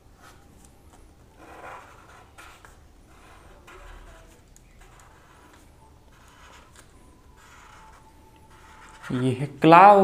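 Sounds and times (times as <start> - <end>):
marker drawing on paper: 0.2 - 9.7.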